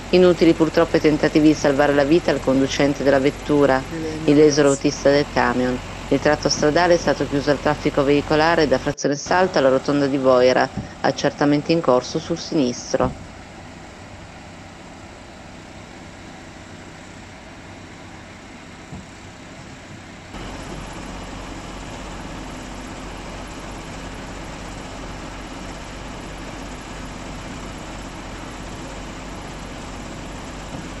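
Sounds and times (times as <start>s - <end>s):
vehicle engines idling: 0.0s - 31.0s.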